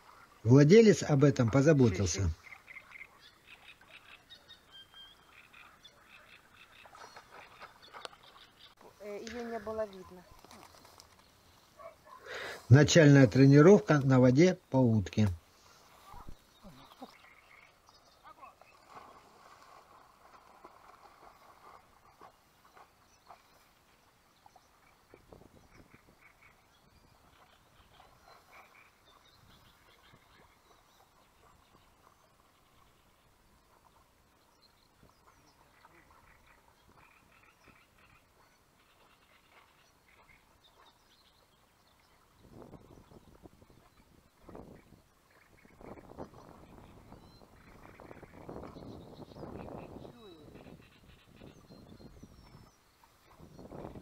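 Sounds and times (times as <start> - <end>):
faint calls: 0.0 - 13.4, 15.2 - 23.7, 35.1 - 41.0, 43.8 - 52.6
faint outdoor ambience: 0.0 - 54.0.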